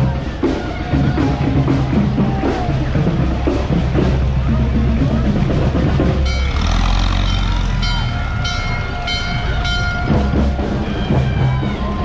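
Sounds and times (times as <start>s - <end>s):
crowd noise: 0.0s - 12.0s
parade music: 0.0s - 12.0s.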